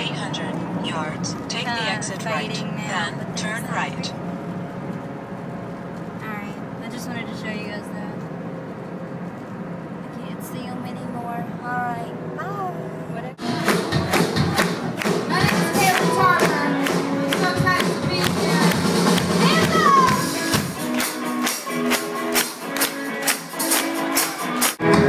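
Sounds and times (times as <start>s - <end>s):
car cabin road hum: 0.0s - 20.2s
live pop music with female singer: 13.7s - 20.6s.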